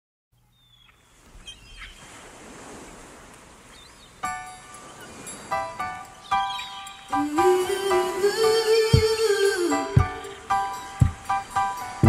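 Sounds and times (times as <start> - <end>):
gull cries: 0.6 - 2.1, 6.2 - 8.1
sea surf: 1.0 - 12.0.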